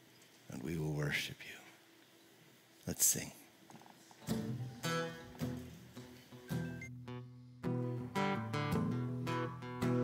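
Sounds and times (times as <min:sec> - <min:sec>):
acoustic guitar strumming: 0:04.2 - 0:10.0.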